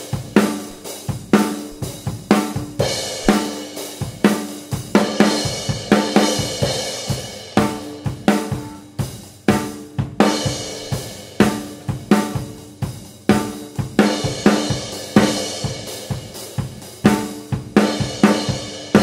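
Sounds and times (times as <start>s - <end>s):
hi-hats and crash cymbals: 0.0s - 19.0s
snare and bass drum: 0.0s - 19.0s.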